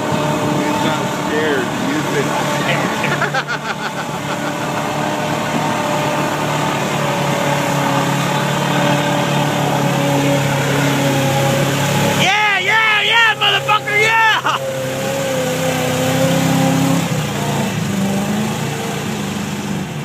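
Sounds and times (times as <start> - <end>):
truck engine running: 0.0 - 20.0
water spray: 0.0 - 20.0
people shouting: 11.9 - 14.8.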